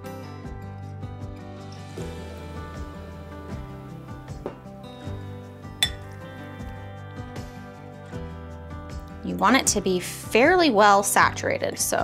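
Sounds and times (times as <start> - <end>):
background music: 0.0 - 12.0
fork clinking against ceramic bowl: 5.8 - 6.1.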